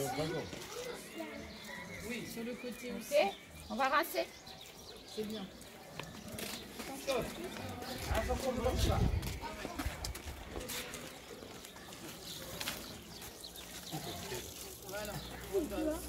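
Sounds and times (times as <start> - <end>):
children chattering: 0.0 - 16.0.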